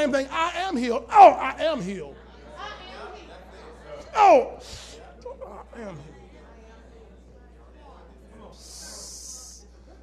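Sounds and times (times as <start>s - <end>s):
faint murmuring: 1.1s - 10.0s.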